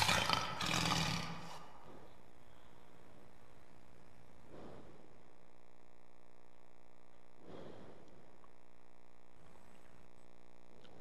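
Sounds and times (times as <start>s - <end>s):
lion roaring: 0.0s - 1.8s.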